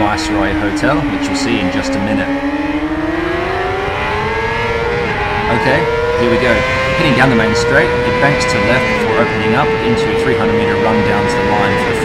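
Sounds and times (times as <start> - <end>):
motorcycle engine accelerating: 0.0 - 12.0
wind rumble: 0.0 - 12.0.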